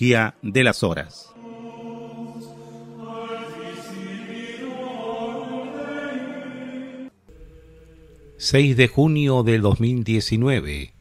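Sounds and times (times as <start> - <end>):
choral chant: 0.0 - 8.6.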